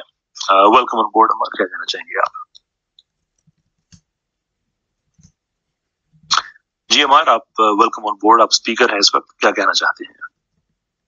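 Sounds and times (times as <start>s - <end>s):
man speaking: 0.0s - 2.5s, 6.3s - 10.3s.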